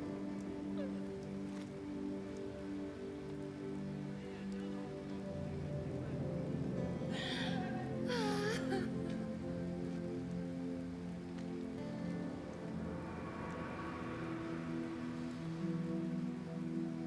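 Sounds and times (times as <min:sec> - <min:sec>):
music of sustained chords: 0:00.0 - 0:17.0
steady hiss: 0:00.0 - 0:17.0.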